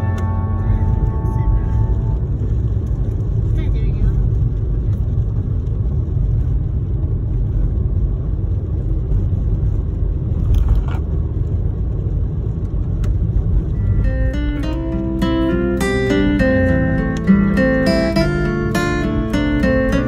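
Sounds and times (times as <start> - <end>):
car driving rumble: 0.0 - 20.0
tyres on wet asphalt: 0.0 - 20.0.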